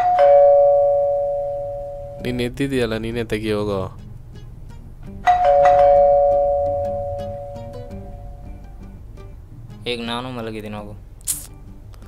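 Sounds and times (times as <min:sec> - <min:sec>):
two-tone doorbell chime: 0:00.0 - 0:02.4, 0:05.3 - 0:08.5.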